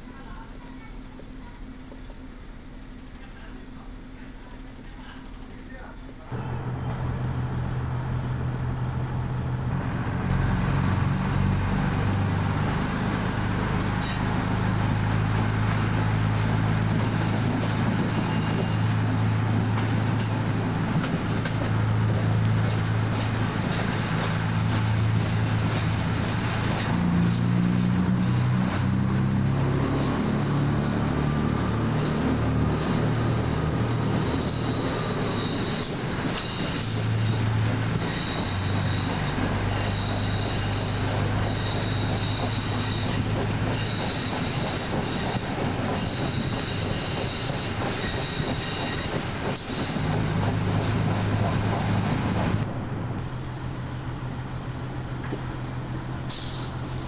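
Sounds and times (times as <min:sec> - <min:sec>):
diesel railcar engine: 0:00.0 - 0:57.0
high wheel squeal: 0:18.0 - 0:19.8, 0:29.8 - 0:50.8.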